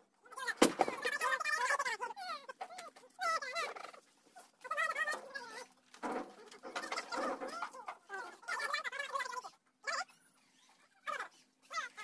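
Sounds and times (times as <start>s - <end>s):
chickens calling: 0.4s - 12.0s.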